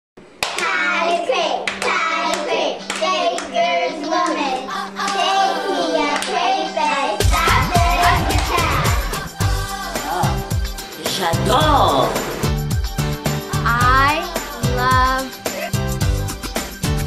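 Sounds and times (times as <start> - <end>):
hand claps: 0.4 - 0.7, 1.6 - 3.5, 7.7 - 8.9
girls singing: 0.7 - 10.5
music with heavy bass: 7.2 - 10.8, 11.4 - 17.0.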